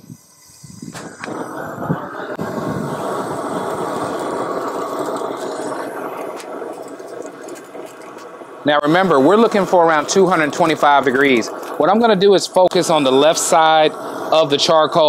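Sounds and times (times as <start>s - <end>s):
rushing torch flame blast: 0.0s - 15.0s.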